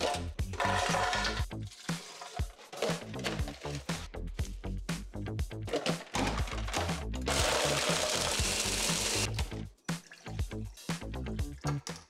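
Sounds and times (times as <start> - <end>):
background music with beat: 0.0 - 12.0
blender grinding ice: 6.0 - 9.3.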